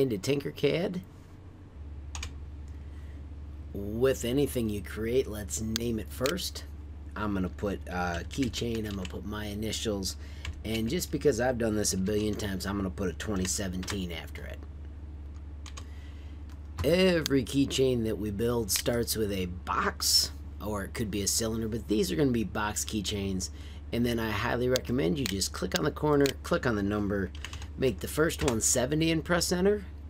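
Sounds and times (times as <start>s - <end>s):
low steady hum: 0.0s - 30.0s
computer keyboard keystrokes: 2.1s - 2.4s, 8.1s - 9.2s, 13.2s - 14.0s.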